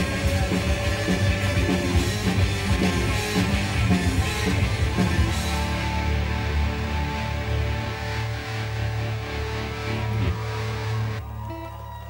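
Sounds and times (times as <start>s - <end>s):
rock band holding a chord: 0.0s - 12.0s.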